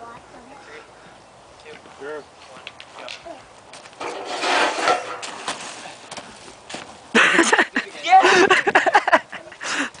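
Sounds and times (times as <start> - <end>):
feet scuffing through wood chips: 3.8 - 7.0.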